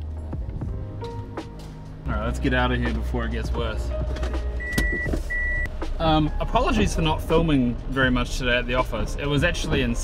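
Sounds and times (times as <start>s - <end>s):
car warning chime beeps: 4.6s - 5.7s.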